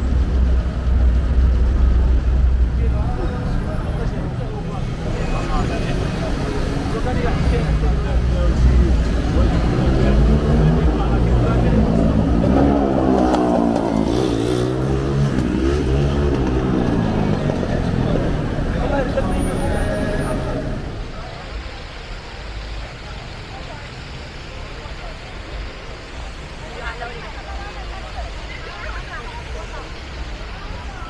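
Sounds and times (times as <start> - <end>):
car and motorcycle engines: 0.0 - 31.0
crowd chatter: 0.0 - 31.0
vehicle passing close: 8.5 - 21.0.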